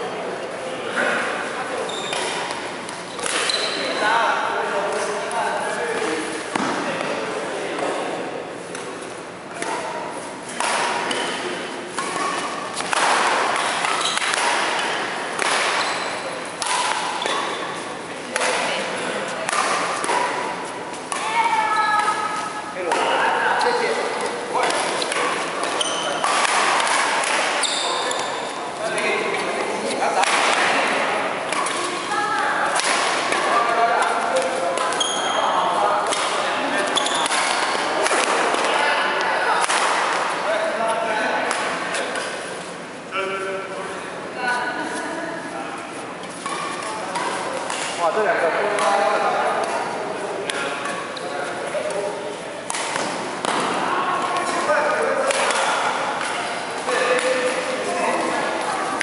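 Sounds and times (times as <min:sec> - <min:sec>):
racket striking shuttlecock: 0:10.5 - 0:15.9, 0:16.5 - 0:23.2, 0:24.2 - 0:28.3, 0:30.2 - 0:32.0, 0:36.0 - 0:38.7, 0:39.6 - 0:40.4, 0:46.3 - 0:48.0, 0:52.6 - 0:53.8, 0:55.2 - 0:56.5.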